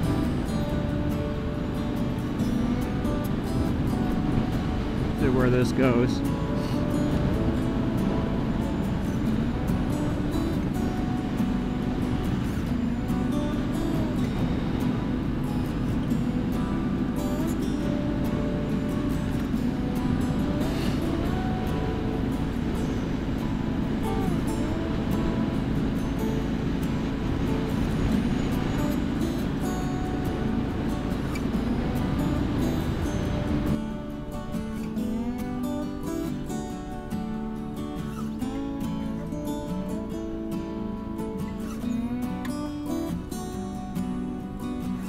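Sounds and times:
motorcycle engine running: 0.0 - 38.0
music: 0.0 - 45.0
wind noise: 0.0 - 45.0.

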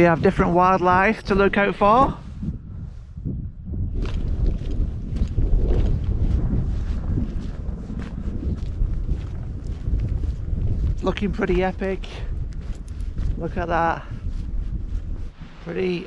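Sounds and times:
footsteps on dirt track: 0.0 - 16.0
wind buffeting microphone: 0.0 - 16.0.

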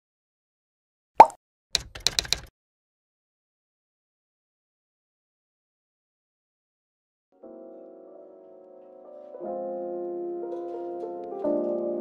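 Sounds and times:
pop sound effect: 1.2 - 1.4.

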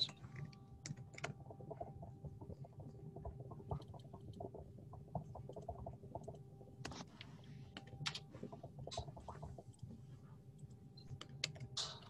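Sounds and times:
computer keyboard typing: 0.0 - 6.4.

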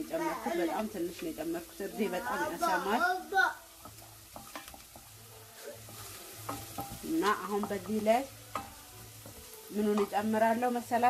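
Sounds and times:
carrots sizzling in oil: 0.0 - 11.0
spatula knocking and scraping pot: 3.8 - 5.2, 5.8 - 11.0.

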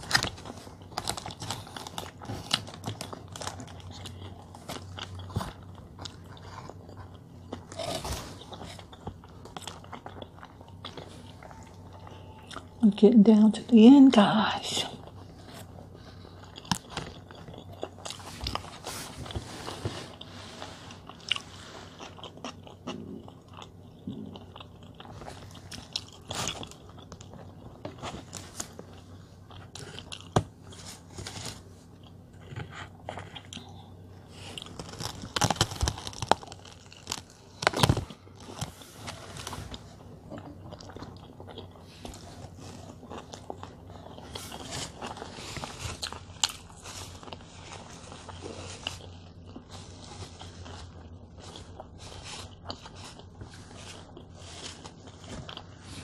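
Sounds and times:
person chewing burger: 0.0 - 12.8, 15.0 - 56.0.

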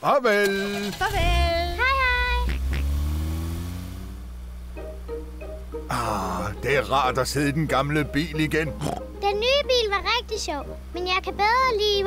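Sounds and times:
cartoon car engine whine: 0.4 - 6.0
person calling goodbye: 1.6 - 2.6.

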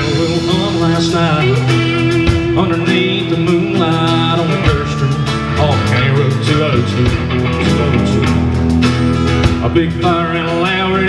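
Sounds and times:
acoustic guitar: 0.0 - 11.0
bass guitar: 0.0 - 11.0
drum kit: 0.0 - 11.0
electric guitars: 0.0 - 11.0.

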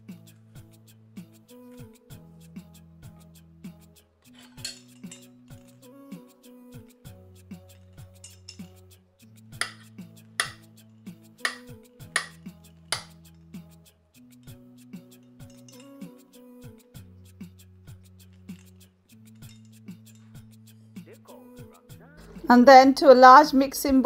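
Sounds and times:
background music: 0.0 - 24.0
sharp knocks: 9.6 - 9.8, 10.4 - 10.6, 11.5 - 13.1.

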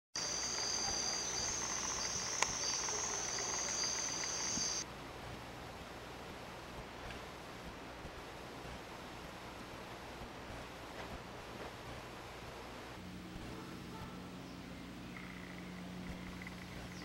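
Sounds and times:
crickets chirring: 0.2 - 4.8, 15.1 - 17.0
faint hiss: 0.2 - 17.0.

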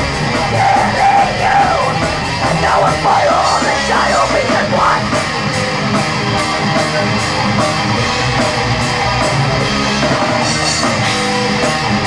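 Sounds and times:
distorted electric guitars: 0.0 - 12.0
drums: 0.0 - 12.0
yelled vocals: 0.2 - 5.3.

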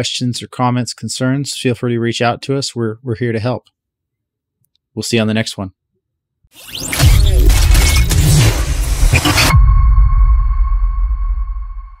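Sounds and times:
high ringing tone: 9.3 - 12.0.

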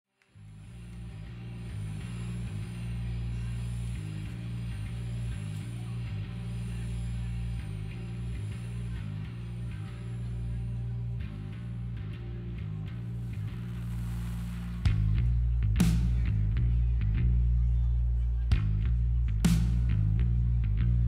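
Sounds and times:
deep sustained bass line: 0.4 - 21.0.

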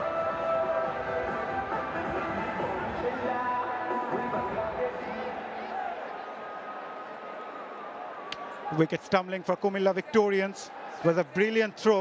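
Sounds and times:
stadium music: 0.0 - 7.4.

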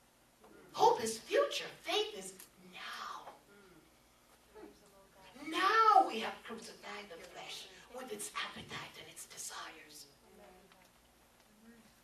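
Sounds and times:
woman speaking into a microphone: 4.6 - 10.7.

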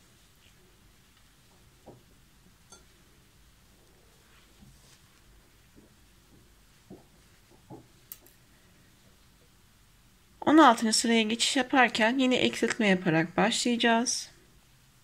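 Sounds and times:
rustles from handling crochet: 4.2 - 5.8.

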